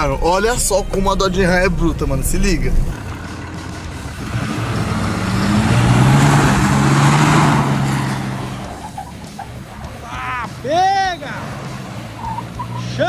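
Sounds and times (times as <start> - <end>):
truck engine revving hard: 0.0 - 13.0
tyres spraying dirt: 0.0 - 13.0.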